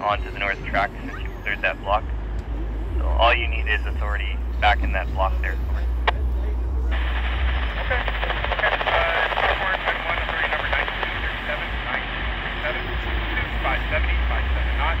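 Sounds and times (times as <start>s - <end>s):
faint garbled radio voice: 0.0s - 15.0s
radio static hiss: 3.0s - 15.0s
radio scanner keying up: 6.9s - 15.0s.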